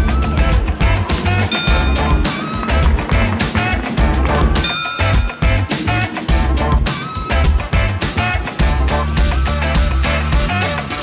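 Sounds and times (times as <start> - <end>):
upbeat music with heavy bass: 0.1 - 11.0.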